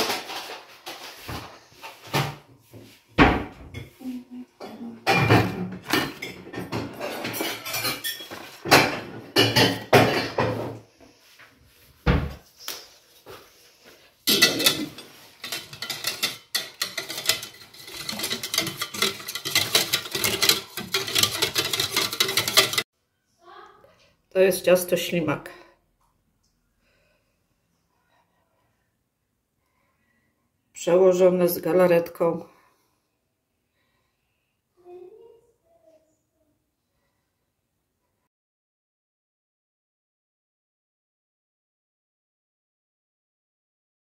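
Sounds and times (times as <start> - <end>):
metal utensil stirring in a pot: 6.0 - 10.2, 14.2 - 22.9.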